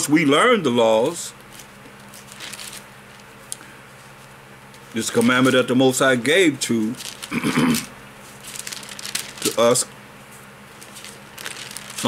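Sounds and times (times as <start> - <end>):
man clearing his throat: 7.3 - 7.9.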